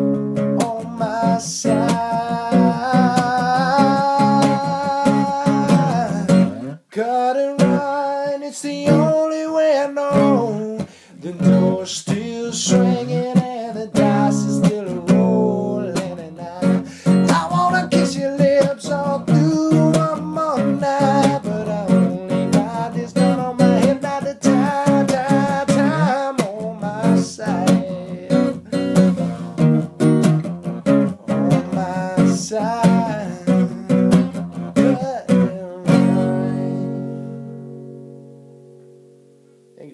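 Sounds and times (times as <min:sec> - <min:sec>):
acoustic guitar strumming: 0:00.0 - 0:39.9
man singing: 0:00.4 - 0:29.9, 0:30.8 - 0:37.4.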